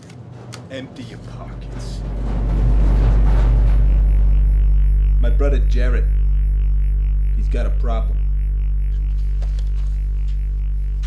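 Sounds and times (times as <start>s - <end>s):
deep bass music drone: 1.2s - 11.0s.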